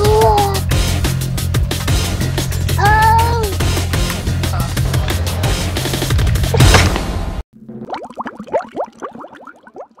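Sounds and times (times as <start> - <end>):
water bubbling: 7.6 - 10.0.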